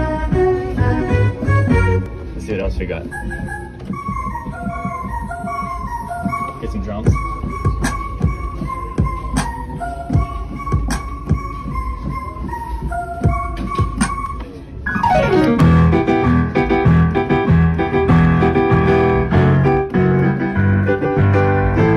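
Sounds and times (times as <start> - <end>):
bass line: 0.0 - 2.2, 13.2 - 21.9
digital piano pop tune: 0.0 - 21.9.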